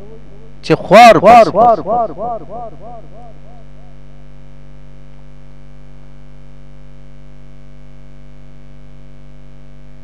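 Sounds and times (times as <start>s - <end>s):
echoing spoken syllable: 0.0s - 3.6s
low electrical hum: 0.0s - 10.0s.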